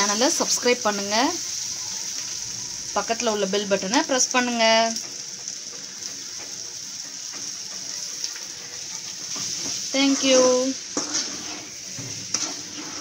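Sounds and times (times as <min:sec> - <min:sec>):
food sizzling in a hot pan: 0:00.0 - 0:13.0
spatula stirring in pan: 0:05.0 - 0:13.0.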